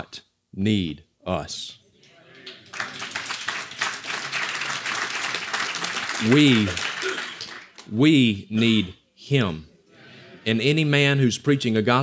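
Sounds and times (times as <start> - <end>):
audience applauding: 2.4 - 7.9.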